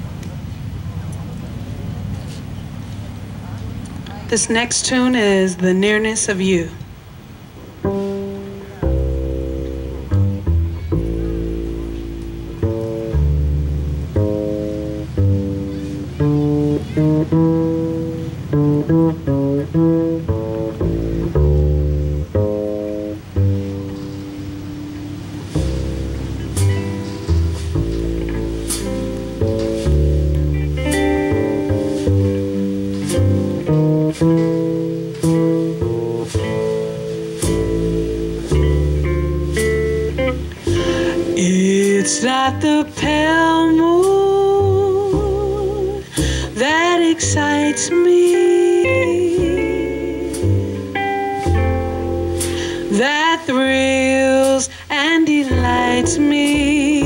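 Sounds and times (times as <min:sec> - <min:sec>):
guitar chords: 0:07.7 - 0:57.0
deep bass notes: 0:07.8 - 0:54.8, 0:55.4 - 0:57.0
woman singing jazz ballad: 0:39.6 - 0:57.0.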